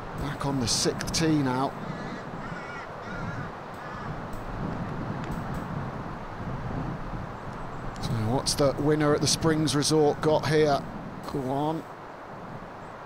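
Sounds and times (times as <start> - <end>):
wind noise: 0.0 - 13.0
bird calling harshly: 1.8 - 4.2.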